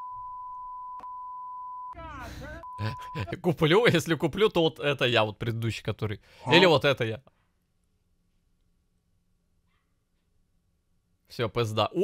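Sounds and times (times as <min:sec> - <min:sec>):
censor bleep: 0:00.0 - 0:02.0.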